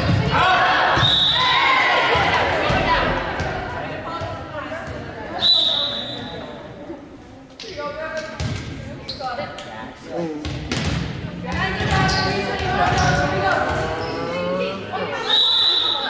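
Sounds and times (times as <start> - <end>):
volleyball bouncing on wooden floor: 0.0 - 0.4, 10.4 - 13.9
players calling and cheering: 0.0 - 6.5.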